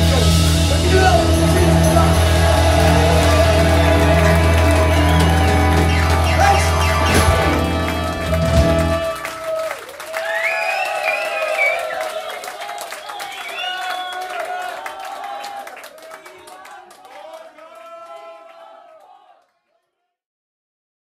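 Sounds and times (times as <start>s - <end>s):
drum hits: 0.0s - 9.2s
live rock band playing final chord: 0.0s - 9.5s
crowd cheering and clapping: 0.0s - 19.8s.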